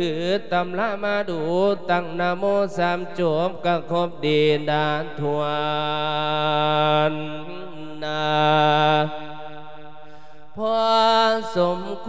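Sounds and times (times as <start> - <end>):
monk chanting into a microphone: 0.0 - 12.0.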